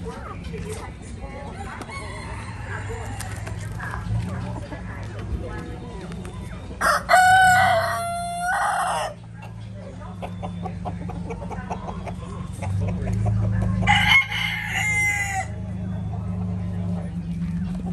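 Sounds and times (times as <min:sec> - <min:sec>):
roosters crowing: 0:01.4 - 0:03.8, 0:06.7 - 0:09.4, 0:13.6 - 0:15.8.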